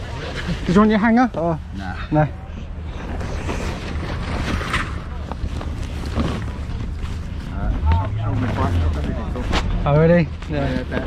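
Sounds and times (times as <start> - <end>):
leather suit rustling and creaking: 2.8 - 11.0.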